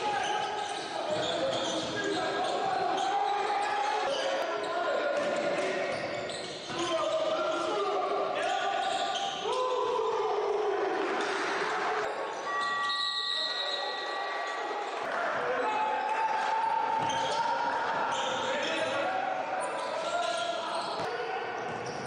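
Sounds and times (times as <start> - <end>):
sneakers squeaking: 0.0 - 7.7, 8.8 - 9.7, 17.0 - 19.0, 19.6 - 22.0
players' voices: 0.0 - 22.0.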